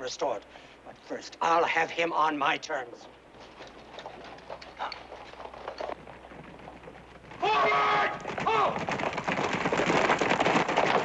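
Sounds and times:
horse hoofbeats on dirt: 3.3s - 11.0s.

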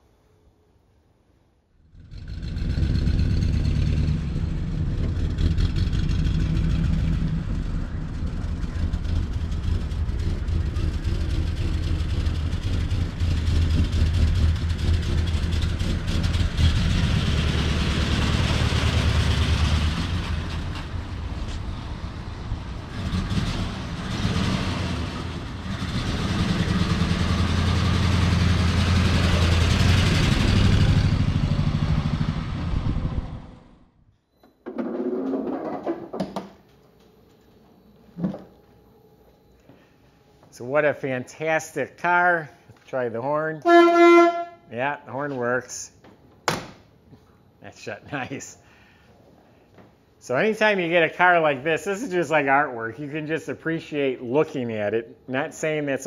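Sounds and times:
car engine driving off: 1.8s - 34.0s.

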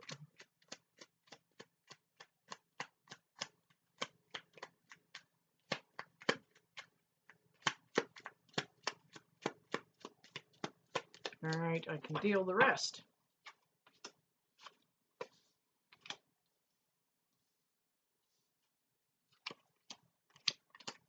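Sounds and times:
cards being shuffled: 13.4s - 16.2s.

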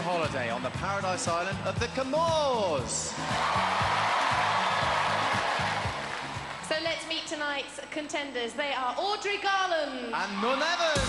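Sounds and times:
backing music with repeating bass line: 0.0s - 6.7s.

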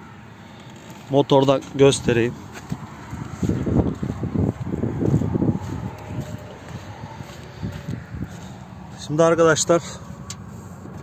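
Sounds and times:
footsteps on dirt: 0.5s - 9.1s.

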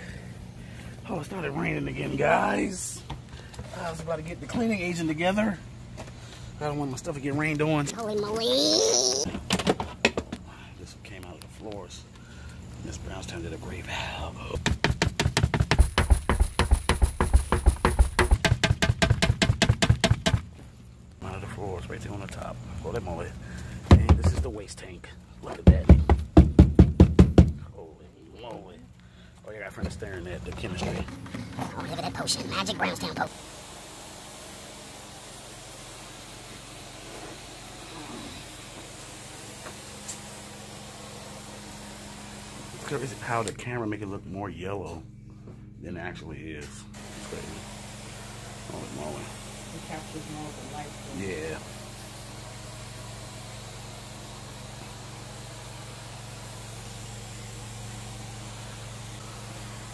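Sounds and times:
plastic canister knocking: 14.6s - 20.4s
low machine hum: 27.6s - 59.9s
sprayer hissing: 33.2s - 43.4s, 46.9s - 59.9s.

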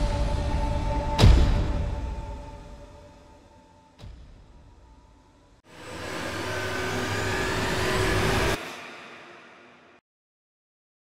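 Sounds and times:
rising whoosh: 5.7s - 10.0s.

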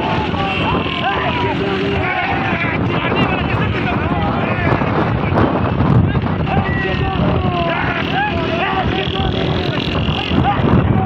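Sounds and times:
men shouting and whooping: 0.0s - 5.4s, 6.0s - 11.0s
motorcycle engines running: 0.0s - 11.0s
wind buffeting microphone: 0.0s - 11.0s.

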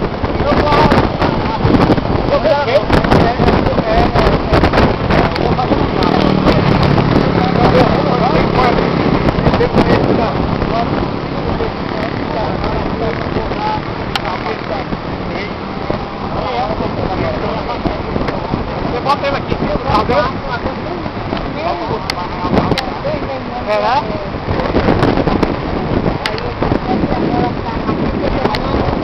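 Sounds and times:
indistinct voices: 0.0s - 29.0s
wind on microphone: 0.0s - 29.0s.

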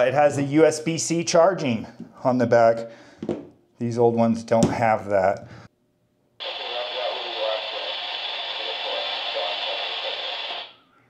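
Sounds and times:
hissy radio voice: 6.4s - 10.8s.

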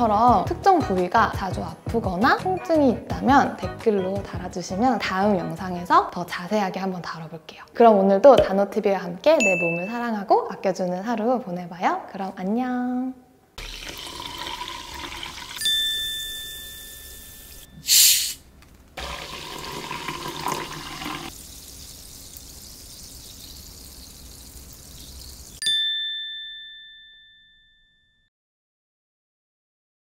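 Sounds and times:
carbonated drink pouring and fizzing: 13.6s - 15.7s, 19.0s - 25.6s
bright chime: 15.6s - 17.9s, 25.6s - 28.3s
short loud hiss: 17.8s - 18.4s.

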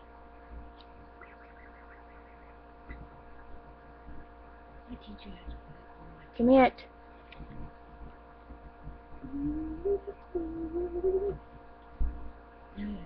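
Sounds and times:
electrical mains hum: 0.0s - 13.0s
person humming drawn-out notes: 9.2s - 11.5s.

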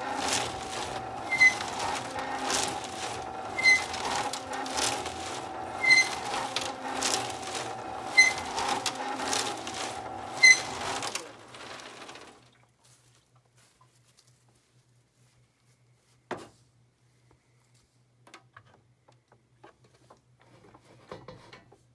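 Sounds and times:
electric gear motor hum: 0.0s - 12.5s
nuts and washers rattling in water: 0.0s - 12.5s
short high squeak: 1.2s - 11.2s.

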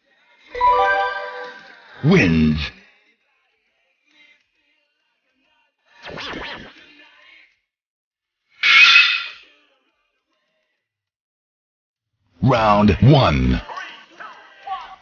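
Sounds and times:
editing sound effects: 0.6s - 2.1s.

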